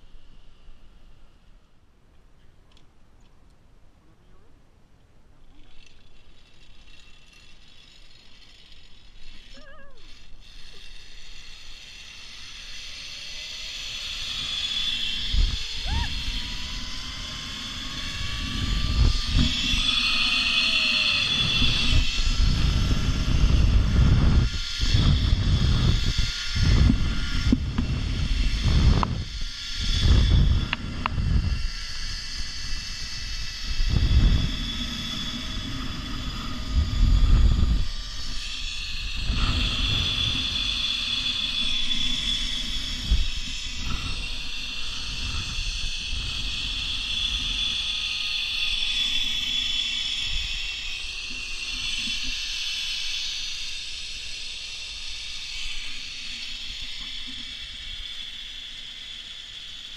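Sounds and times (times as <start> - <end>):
zipline pulleys whirring on cable: 0.0 - 1.8, 5.4 - 59.9
faint rising whine: 0.0 - 3.1, 5.2 - 59.9
wind buffeting microphone: 14.4 - 51.0.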